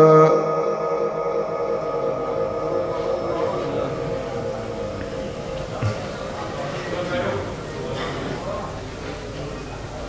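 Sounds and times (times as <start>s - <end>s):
chanted recitation over loudspeakers: 0.0s - 8.9s
low room hubbub: 0.0s - 10.0s.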